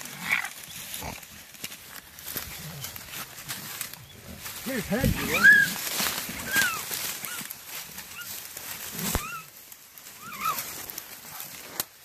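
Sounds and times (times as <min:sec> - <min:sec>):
scuffling in leaf litter: 0:00.0 - 0:12.0
high cries and yelps: 0:04.7 - 0:07.5, 0:09.1 - 0:10.8.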